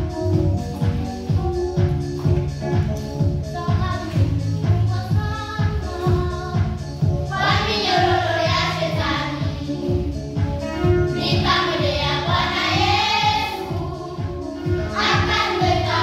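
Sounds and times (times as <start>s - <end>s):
backing music with low beat: 0.0s - 16.0s
children singing gospel: 4.8s - 16.0s.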